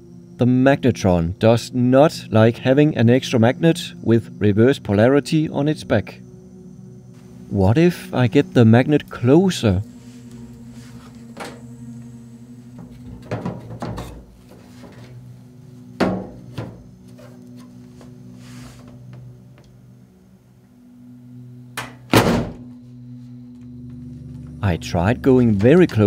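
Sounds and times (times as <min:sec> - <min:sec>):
steady low hum: 0:00.0 - 0:26.0
knocks and thunks of metal on wood: 0:12.8 - 0:15.0, 0:16.0 - 0:16.8, 0:21.8 - 0:22.6.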